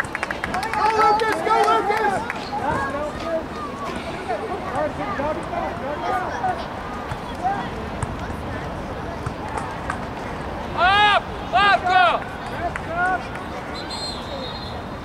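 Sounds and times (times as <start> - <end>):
people shouting: 10.8 - 12.2
short high whistle blast: 13.8 - 14.8.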